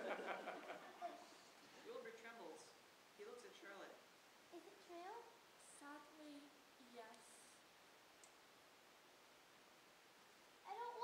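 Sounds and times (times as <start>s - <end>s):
child speaking: 4.5s - 7.2s, 10.6s - 11.0s.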